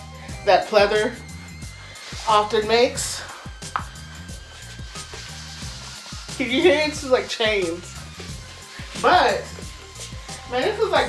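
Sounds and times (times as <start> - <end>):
music with bass and steady beat: 0.0 - 11.0.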